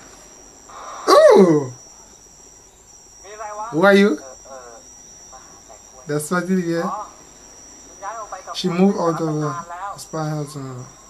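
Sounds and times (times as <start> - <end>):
high-pitched two-tone whine: 0.0 - 11.0
person speaking: 3.3 - 4.8, 5.4 - 7.1, 8.0 - 10.9.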